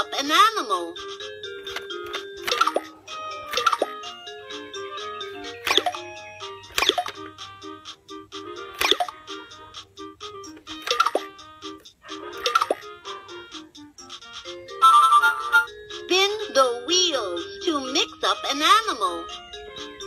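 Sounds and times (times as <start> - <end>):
bleepy electronic toy melody: 0.0 - 20.0.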